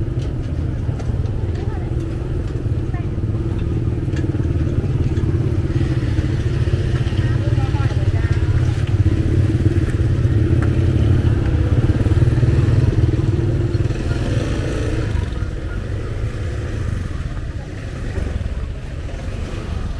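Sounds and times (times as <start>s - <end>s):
motor scooters riding slowly: 0.0s - 19.9s
people talking: 0.0s - 19.9s.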